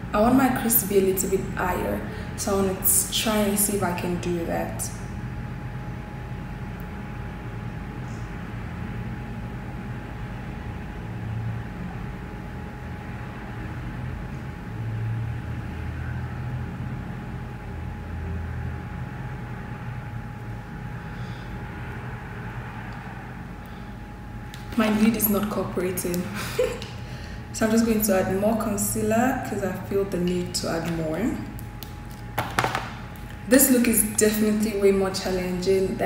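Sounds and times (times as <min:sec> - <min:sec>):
faint constant hum: 0:00.0 - 0:36.0.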